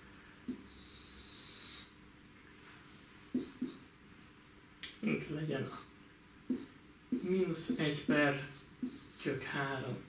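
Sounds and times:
marker tapping on whiteboard: 3.3s - 3.8s, 6.5s - 7.9s.

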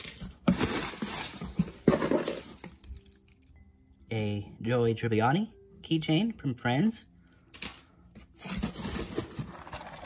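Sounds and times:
plastic bag rustling: 0.0s - 2.8s.

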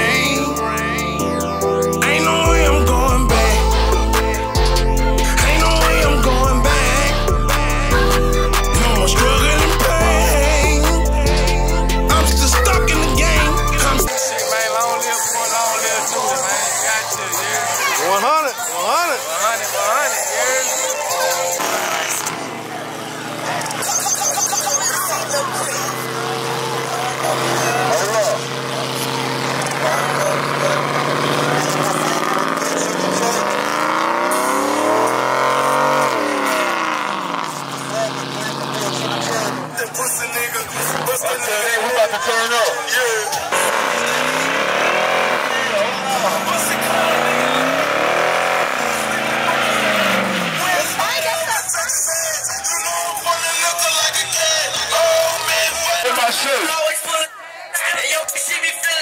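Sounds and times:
music: 0.0s - 36.6s, 38.6s - 50.3s
truck engine revving: 0.0s - 56.8s
crowd voices: 0.0s - 59.0s
tyres spinning: 15.3s - 56.8s.

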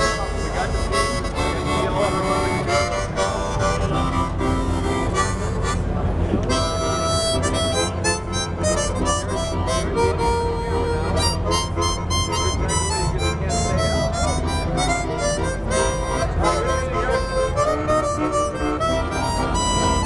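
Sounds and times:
harmonica playing chords: 0.0s - 20.0s.

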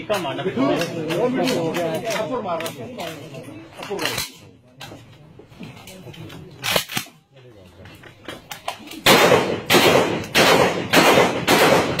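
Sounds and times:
rifle shots: 9.0s - 12.0s.

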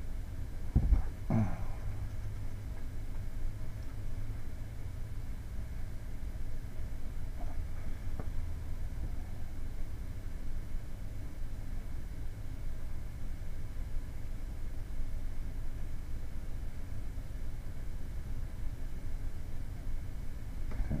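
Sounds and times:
low rumble of room noise: 0.0s - 21.0s.

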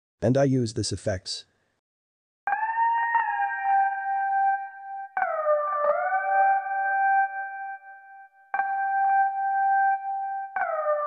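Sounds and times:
electric piano chords: 2.5s - 11.0s.

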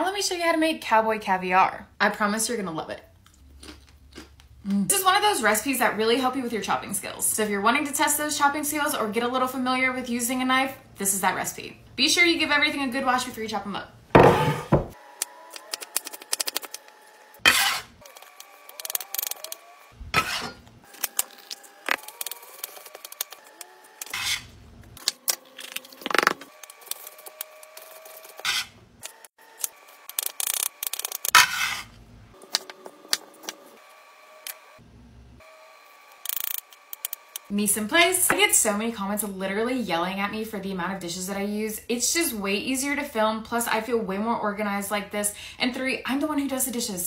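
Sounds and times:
knife knocking on wooden board: 14.2s - 14.9s
knife scraping: 17.4s - 18.3s, 20.2s - 22.0s, 24.0s - 24.5s, 28.0s - 28.8s, 30.3s - 32.0s.

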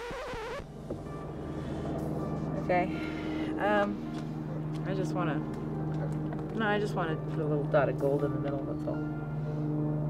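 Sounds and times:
low engine hum: 0.6s - 10.0s.

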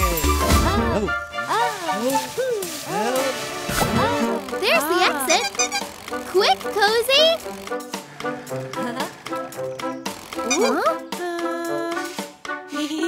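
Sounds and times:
swooping cartoon noises: 2.4s - 7.6s, 10.4s - 11.0s
cartoon music: 4.2s - 7.4s, 10.4s - 11.5s.

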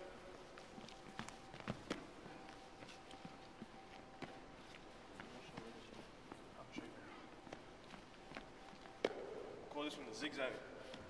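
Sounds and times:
footsteps on hardwood floor: 0.4s - 9.2s.

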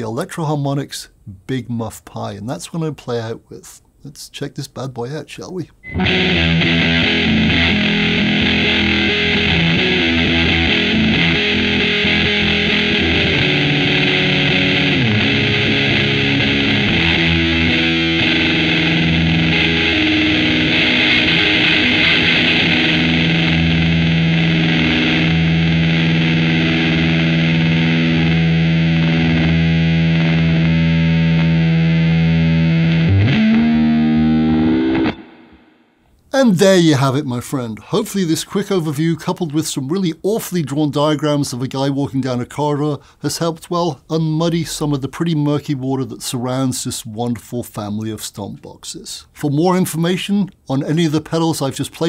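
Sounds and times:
fuzzed electric guitar riff: 5.8s - 36.0s.

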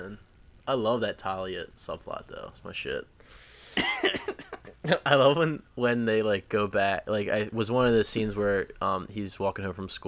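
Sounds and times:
man breathing: 3.2s - 3.8s.

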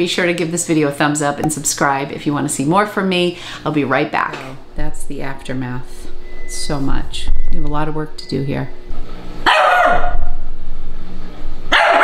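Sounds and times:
small dog barking: 9.4s - 10.4s, 11.7s - 12.0s.

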